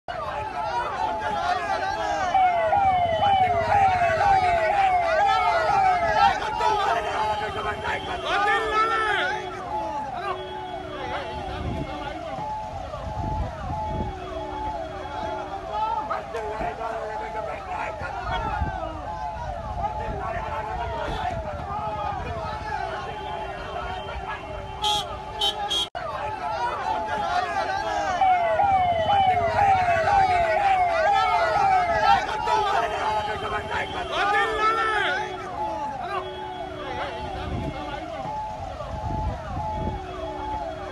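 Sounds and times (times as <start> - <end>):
police siren falling tone: 0.1 - 24.6, 26.0 - 40.9
voices: 0.1 - 40.9.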